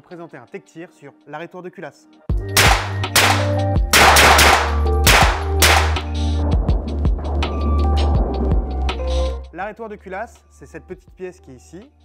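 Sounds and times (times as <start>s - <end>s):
pistol shots: 2.6s - 6.1s.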